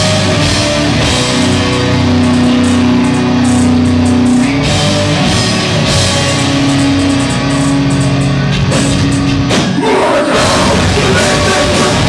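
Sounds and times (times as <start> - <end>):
distorted electric guitars: 0.0 - 12.0
fast drumming: 0.0 - 12.0.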